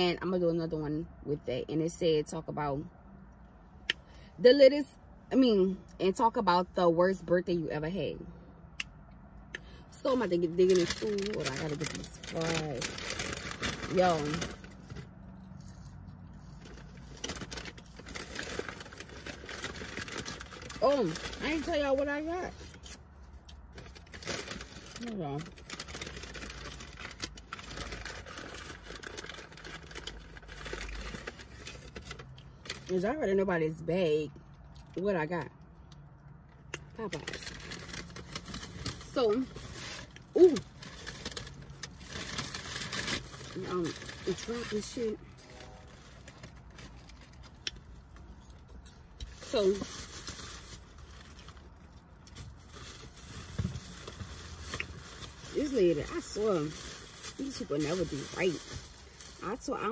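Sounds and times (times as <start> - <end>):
low steady hum: 0.0 - 59.9
paper bag rustling and crinkling: 10.0 - 15.1, 15.7 - 23.0, 23.7 - 32.8, 37.1 - 47.6, 49.3 - 59.9
paper bag rustling: 10.6 - 15.1, 16.4 - 22.6, 23.7 - 32.2.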